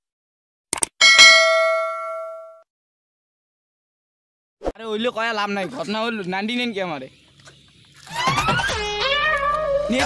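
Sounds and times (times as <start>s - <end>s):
notification bell chime: 1.0s - 2.6s.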